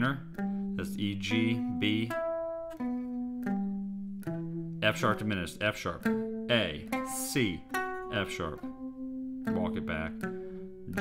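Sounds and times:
person speaking: 0.0s - 2.3s, 4.8s - 8.8s, 9.5s - 11.0s
clean electric guitar notes: 0.0s - 11.0s.

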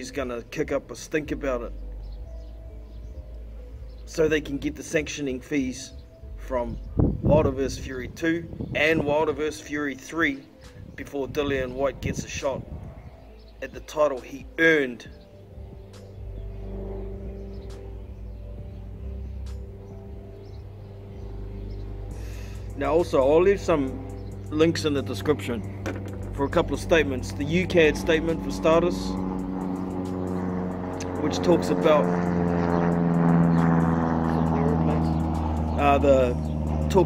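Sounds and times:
engine drone: 0.0s - 37.0s
steady low hum: 5.9s - 37.0s.

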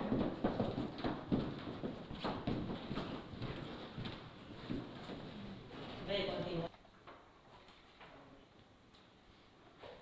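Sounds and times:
heeled footsteps on wooden floor: 0.0s - 5.3s.

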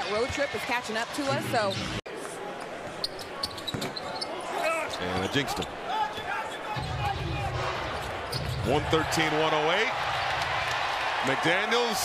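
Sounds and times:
arena crowd noise: 0.0s - 12.0s
sneaker squeaks: 3.0s - 5.7s, 8.0s - 8.6s.

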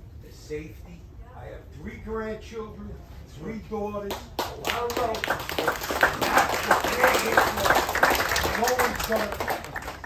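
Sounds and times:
audience applause: 4.6s - 10.0s.

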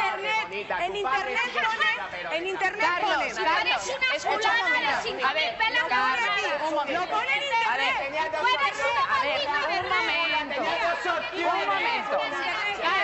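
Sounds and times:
people quarrelling loudly: 0.0s - 13.0s.

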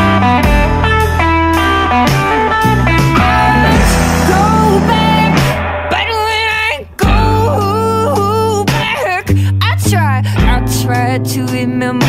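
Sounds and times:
indie rock song with female vocal: 3.2s - 12.0s.

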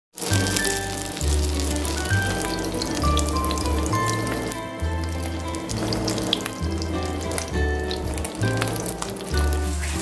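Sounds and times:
oil sizzling in a pan: 0.2s - 10.0s
slow background music: 0.2s - 10.0s.

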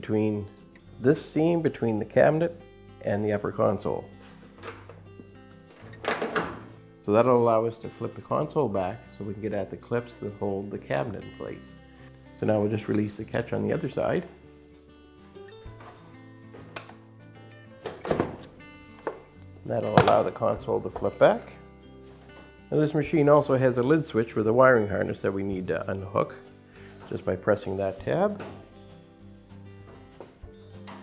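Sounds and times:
quiet background music: 0.0s - 31.0s.

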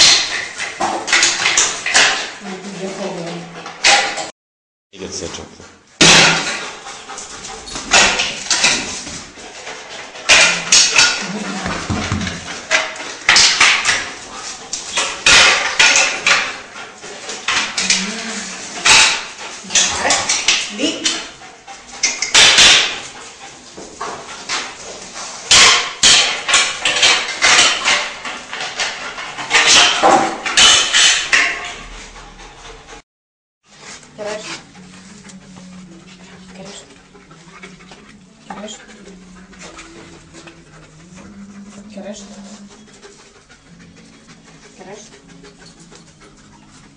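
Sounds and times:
dog barking in echoing room: 0.0s - 2.4s, 6.0s - 9.0s, 10.2s - 18.0s, 18.6s - 32.2s.

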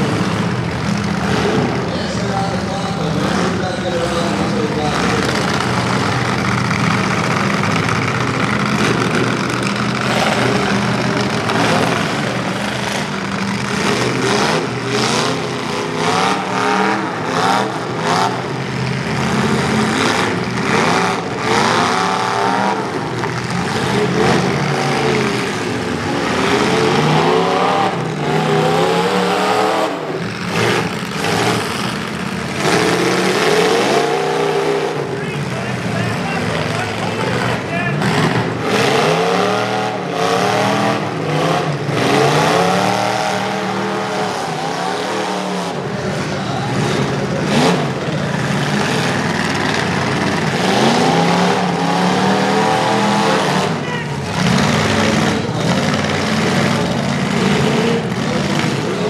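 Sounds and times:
truck engines revving: 0.0s - 59.0s.

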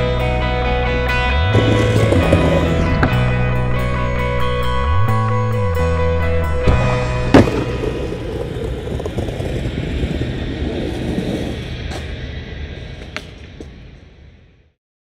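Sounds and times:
music: 0.0s - 14.8s
skateboard wheels rolling: 1.3s - 14.4s
skateboard landing on pavement: 6.7s - 10.0s.

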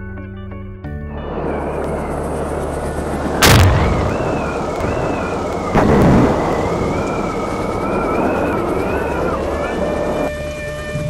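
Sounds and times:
rumbling hissing noise: 1.1s - 10.5s
high wavering whistle tones: 1.1s - 11.0s
deep boom: 3.0s - 8.3s.

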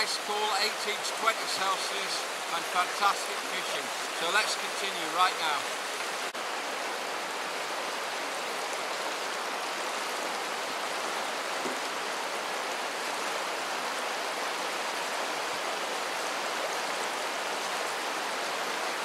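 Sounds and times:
river water rushing over boulders: 0.0s - 19.0s.

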